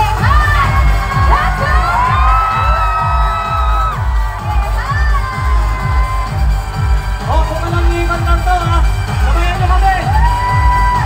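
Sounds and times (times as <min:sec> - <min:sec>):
crowd cheering and shouting: 0:00.0 - 0:11.0
live pop music with bass beat: 0:00.0 - 0:11.0.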